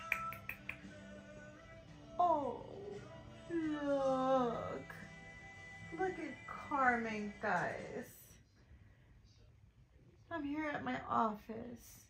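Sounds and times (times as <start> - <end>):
finger snaps: 0.0 - 1.0
soft lo-fi background music: 0.0 - 12.0.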